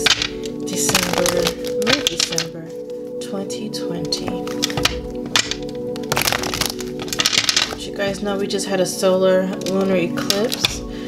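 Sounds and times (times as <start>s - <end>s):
cards being shuffled: 0.0s - 3.0s, 4.1s - 8.3s
background music: 0.0s - 11.0s.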